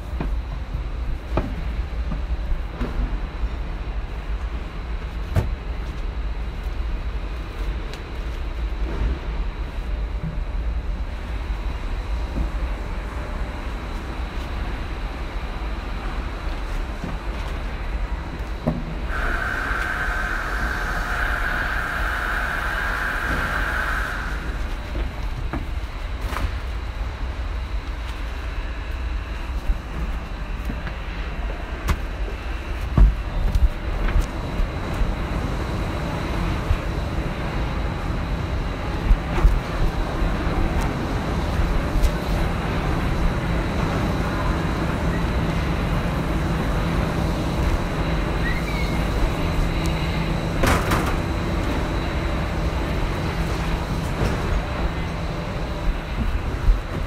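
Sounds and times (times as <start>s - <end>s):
factory machinery rumbling: 0.0s - 57.0s
high constant hum: 0.0s - 57.0s.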